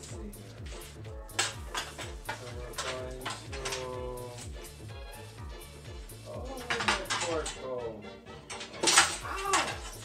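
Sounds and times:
background music with steady beat: 0.0 - 10.0
plastic trays and dishes clattering: 1.4 - 4.0, 6.6 - 7.6, 8.5 - 10.0.

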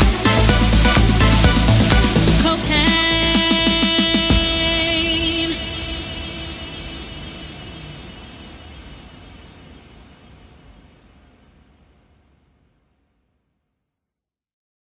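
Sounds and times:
reverb tail of dance track: 0.0 - 12.1.

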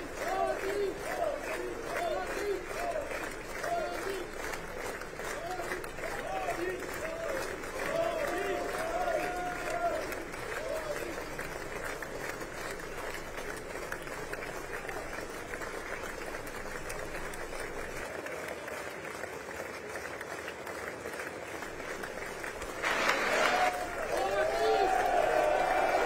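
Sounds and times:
people applauding: 0.0 - 26.0.

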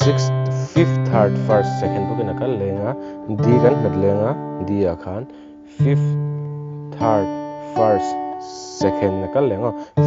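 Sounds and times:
fingerpicked acoustic guitar: 0.0 - 10.0.

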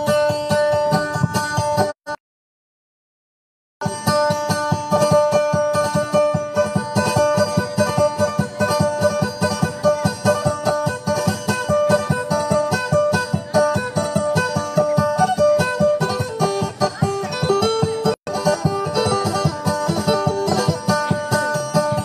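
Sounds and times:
fast plucked string music: 0.0 - 2.2, 3.8 - 22.0.

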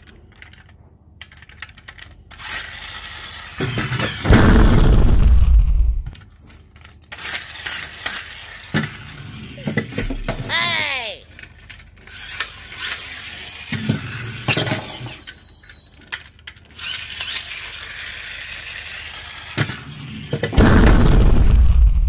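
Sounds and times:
plastic toy clicking and rattling: 0.0 - 4.3, 6.1 - 10.3, 11.3 - 20.6
whistle-like falling tone: 14.5 - 16.0.

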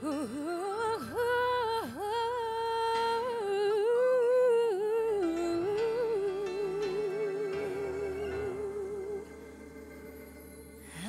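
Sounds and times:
woman humming a melody: 0.0 - 10.2
soft backing track: 0.0 - 11.0.

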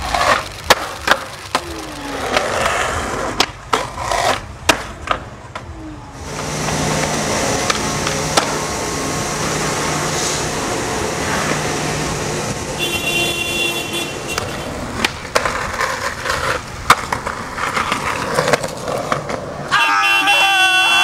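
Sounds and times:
skateboard clacks: 0.0 - 6.0, 6.6 - 8.6, 14.2 - 19.8
skateboard scraping along ledge: 0.0 - 12.8, 14.1 - 19.7
skateboard wheels rolling on asphalt: 0.0 - 21.0.

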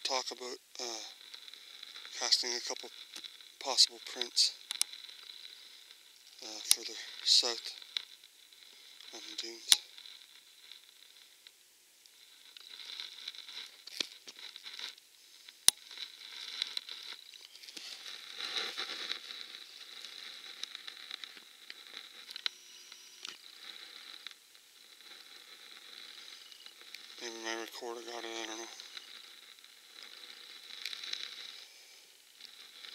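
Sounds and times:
rustling handling noise: 12.1 - 24.4.

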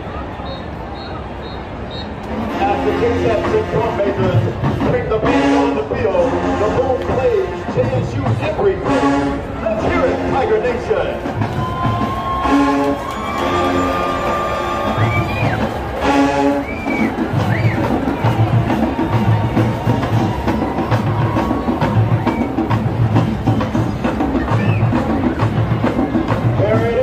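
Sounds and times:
brass chord blasts: 2.4 - 8.0, 8.6 - 11.2, 15.9 - 16.7
drumline pounding beat: 2.4 - 27.0.

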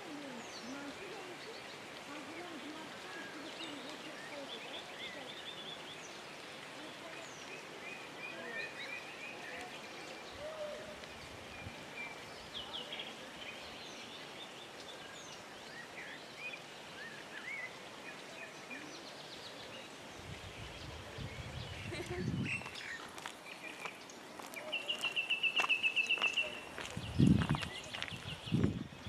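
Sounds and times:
small birds chirping: 0.0 - 29.0
steady background hiss: 0.0 - 29.0.

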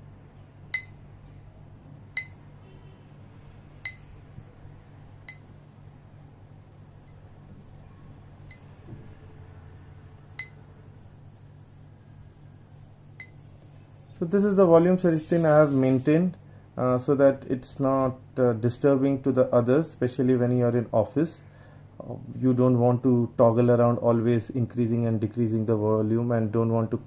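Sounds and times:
smartwatch high beeps: 0.7 - 1.0, 2.2 - 2.4, 3.8 - 4.0, 10.4 - 10.6.

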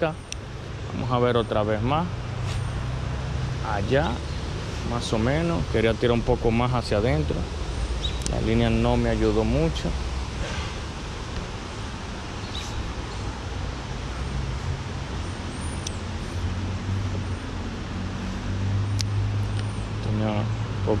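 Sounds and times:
road traffic rumble: 0.0 - 21.0
creek water rushing: 0.1 - 21.0.

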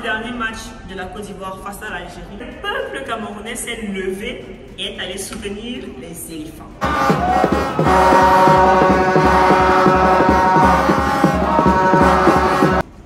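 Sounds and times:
quick steady drum beat: 6.8 - 13.0
sustained horn tones: 6.8 - 13.0.

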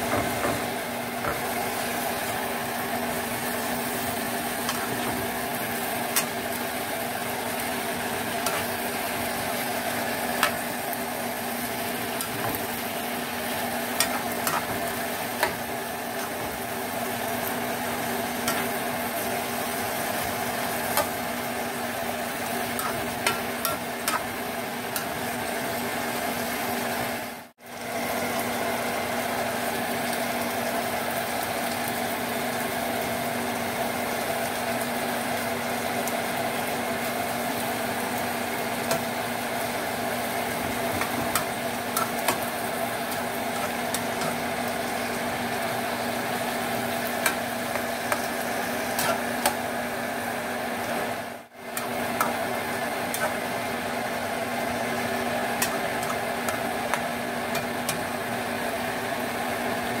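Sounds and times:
food sizzling in a pan: 0.0 - 60.0.

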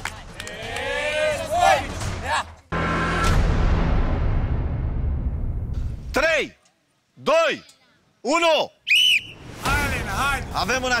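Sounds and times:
boom sound effect with whoosh: 2.8 - 6.1.

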